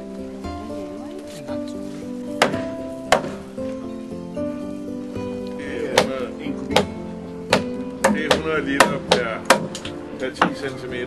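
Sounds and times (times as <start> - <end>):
background music: 0.0 - 11.0
mallet striking chisel: 2.4 - 3.5, 6.0 - 10.6.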